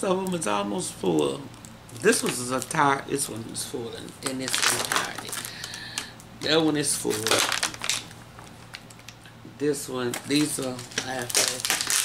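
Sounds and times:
plastic bottles crinkling: 0:01.9 - 0:02.8, 0:04.0 - 0:09.2, 0:10.0 - 0:12.0.

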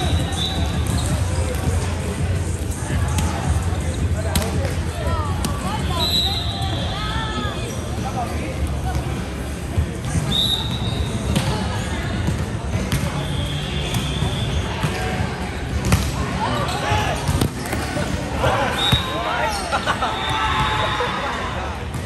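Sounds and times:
players' voices: 0:00.0 - 0:22.0.

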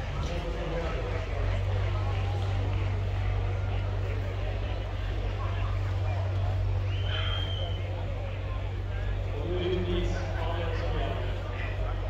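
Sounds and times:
low engine hum: 0:00.0 - 0:12.0
people talking: 0:00.0 - 0:12.0.

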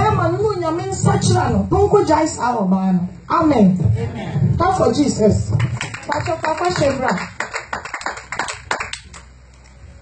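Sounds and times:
hand claps: 0:05.6 - 0:09.3.

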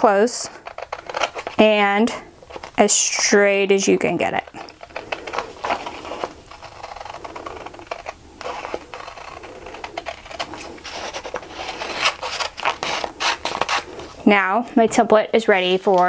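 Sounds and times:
scissors snipping paper: 0:00.0 - 0:01.9, 0:04.0 - 0:14.1
paper rustling: 0:00.5 - 0:03.2, 0:04.3 - 0:14.2, 0:14.9 - 0:16.0.

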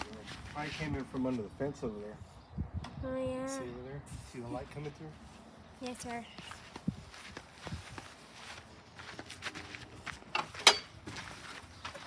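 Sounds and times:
footsteps on grass and dirt: 0:00.0 - 0:01.4, 0:05.2 - 0:12.0.

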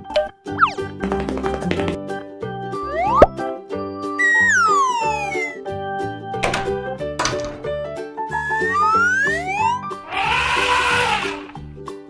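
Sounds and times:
children's background music: 0:00.0 - 0:12.0
cartoon rising whistle: 0:04.2 - 0:05.6, 0:08.3 - 0:11.3.

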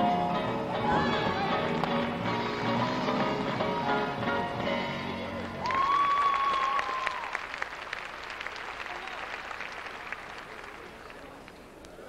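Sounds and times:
audience applauding: 0:05.4 - 0:11.7.

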